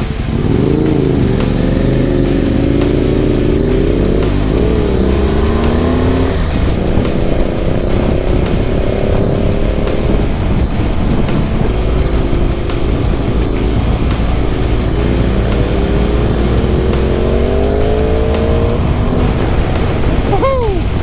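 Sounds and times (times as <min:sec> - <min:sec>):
motorcycle engine pulling through gears: 0:00.0 - 0:20.2
wind and road noise: 0:00.0 - 0:21.0.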